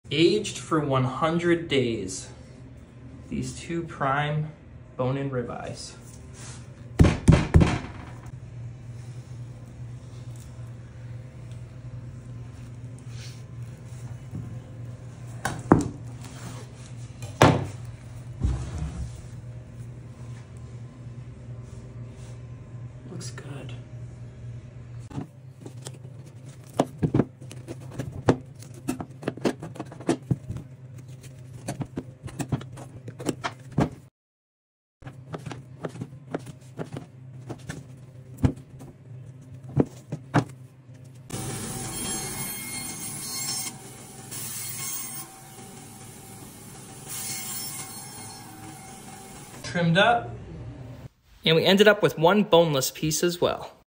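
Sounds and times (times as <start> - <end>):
steady low hum: 0.1 - 34.1, 48.3 - 51.4.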